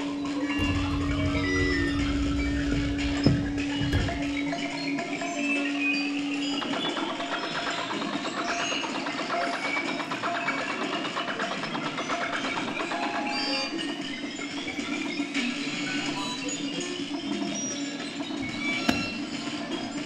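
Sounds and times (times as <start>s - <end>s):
low electronic drone: 0.6s - 5.0s.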